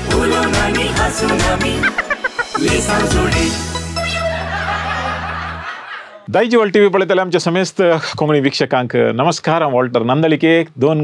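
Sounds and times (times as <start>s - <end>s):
recorded laughter: 1.8s - 2.8s, 4.0s - 6.3s.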